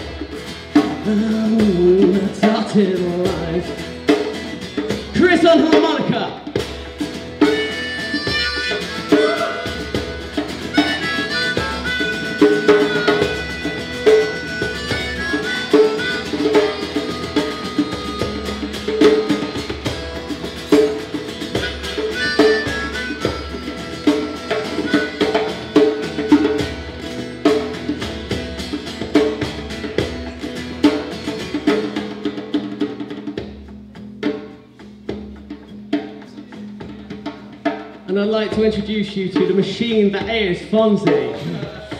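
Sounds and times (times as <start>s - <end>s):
drum kit beat: 0.0s - 41.9s
rock band playing: 0.0s - 41.9s
harmonica solo: 7.3s - 27.4s.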